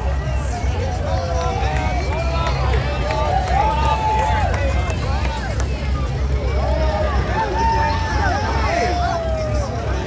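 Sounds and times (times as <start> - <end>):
crowd calling out and whooping: 0.0 - 10.0.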